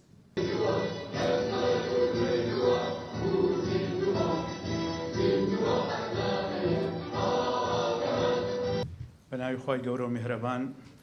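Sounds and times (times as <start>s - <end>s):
choir singing music: 0.4s - 8.8s.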